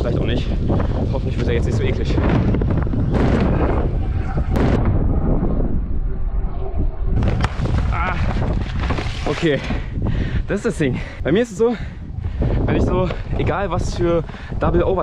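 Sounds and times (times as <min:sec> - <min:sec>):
wind buffeting microphone: 0:00.0 - 0:15.0
scooter wheels rolling on wooden ramp: 0:07.2 - 0:09.7.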